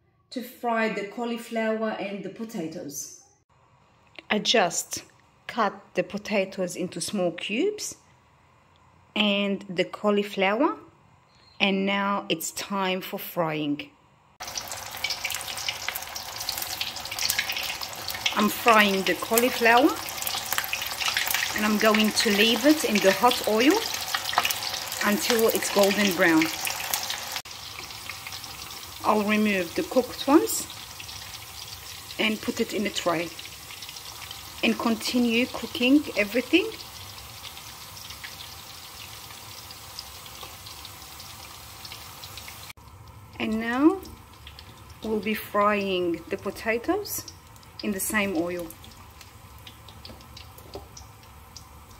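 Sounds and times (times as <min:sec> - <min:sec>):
deep-frying sizzle with crackles: 0:14.3 - 0:51.9.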